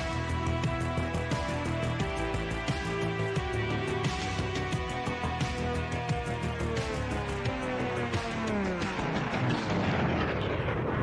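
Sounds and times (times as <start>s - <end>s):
soundtrack music: 0.0s - 11.0s
dense noisy rumble: 8.0s - 11.0s.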